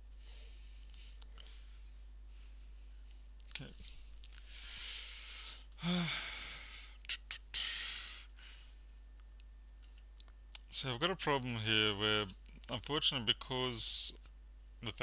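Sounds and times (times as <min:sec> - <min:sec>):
man sighing heavily: 0:04.6 - 0:08.6.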